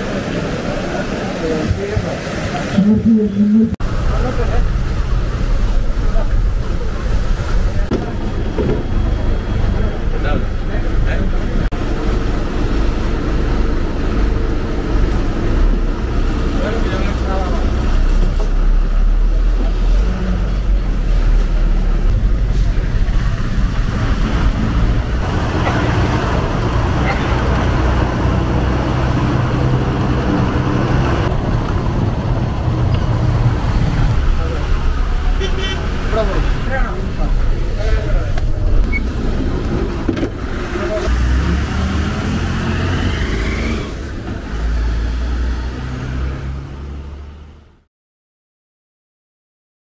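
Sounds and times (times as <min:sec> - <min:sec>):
road noise: 0:00.0 - 0:47.9
bus engine changing gears: 0:15.0 - 0:35.2, 0:36.0 - 0:47.6.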